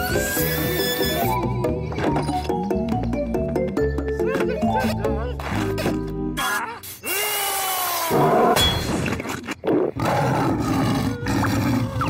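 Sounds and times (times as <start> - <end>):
cartoon lion roaring: 8.0 - 8.6, 9.6 - 12.0.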